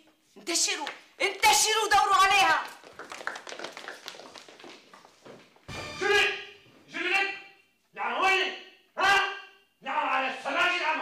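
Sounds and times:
footsteps running on tiled floor: 0:02.7 - 0:06.0.

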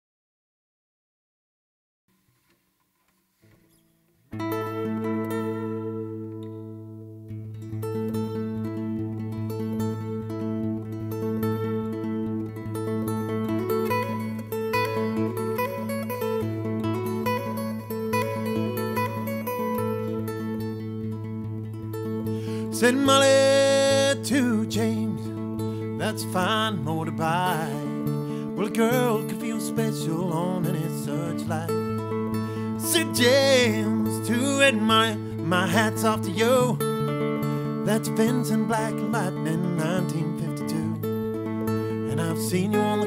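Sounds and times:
acoustic guitar playing: 0:02.4 - 0:43.0.

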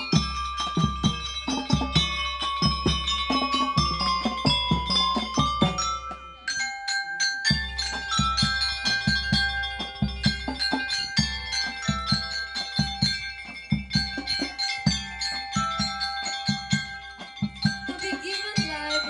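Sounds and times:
steady low drum beat: 0:00.0 - 0:06.6, 0:07.4 - 0:19.0
mallet keyboard melody: 0:00.0 - 0:19.0.

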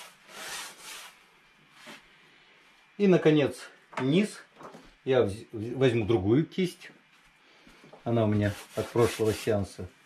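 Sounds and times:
brush scrubbing paint on canvas: 0:00.0 - 0:01.2, 0:08.1 - 0:09.8.

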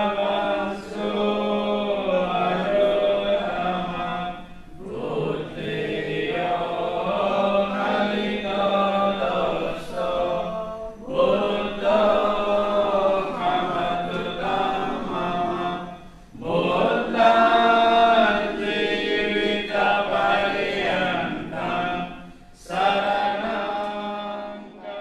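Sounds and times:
group chanting in unison: 0:00.0 - 0:25.0.

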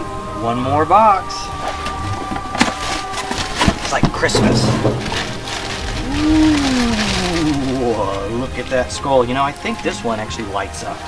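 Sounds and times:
packing paper rustling: 0:01.5 - 0:10.0
cardboard box being opened: 0:01.6 - 0:04.3
sharp knocks and crinkles: 0:01.6 - 0:09.0.

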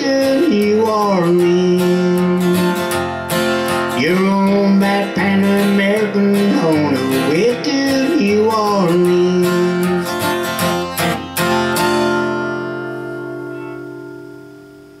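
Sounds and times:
acoustic guitar strumming: 0:00.0 - 0:15.0.

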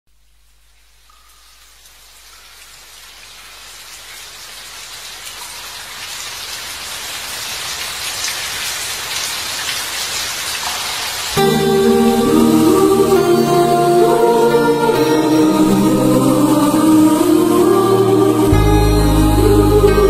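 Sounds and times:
rain hiss: 0:00.1 - 0:20.0
music with sustained chords: 0:11.4 - 0:20.0.

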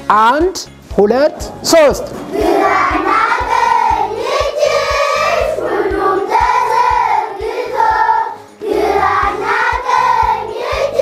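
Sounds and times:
steady low beat: 0:00.8 - 0:07.6
children singing in chorus: 0:02.2 - 0:11.0.

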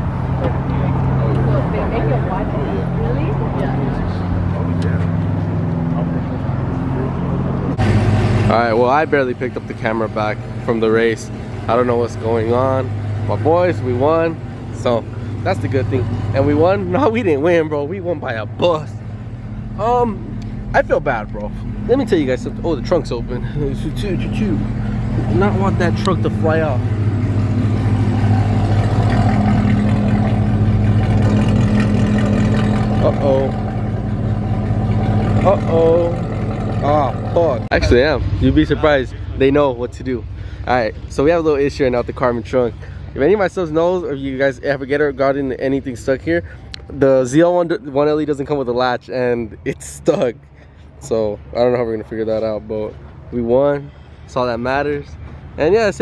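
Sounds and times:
car engine idling: 0:00.0 - 0:56.0
people talking: 0:00.4 - 0:05.1, 0:08.5 - 0:19.0, 0:19.8 - 0:26.8, 0:33.0 - 0:33.6, 0:35.3 - 0:36.2, 0:36.8 - 0:50.4, 0:51.0 - 0:56.0.

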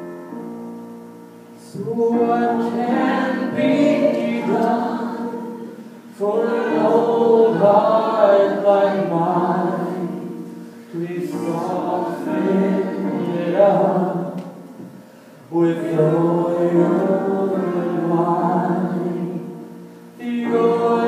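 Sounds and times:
grand piano accompaniment: 0:00.0 - 0:21.0
voices singing worship song: 0:01.6 - 0:21.0.

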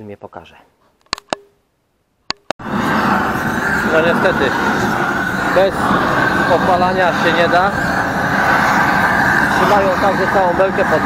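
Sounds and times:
compressed air hissing: 0:02.6 - 0:11.0.

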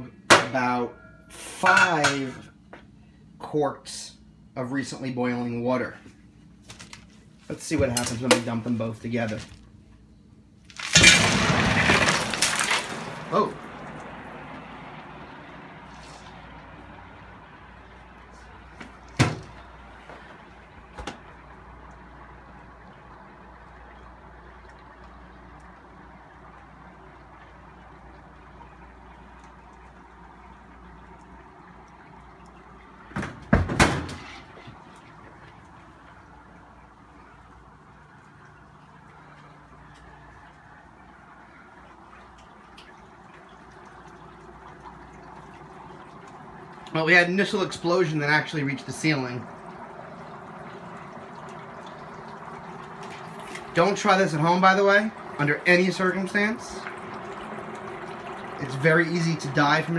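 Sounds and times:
dry ice rushing in hot water: 0:10.7 - 0:18.7, 0:34.2 - 0:59.9.

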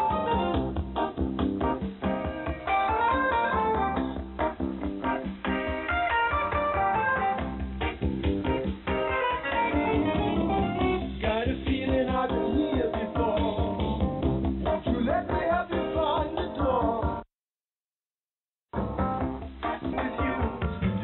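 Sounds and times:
guitar music over radio: 0:00.0 - 0:11.2, 0:18.8 - 0:21.0.

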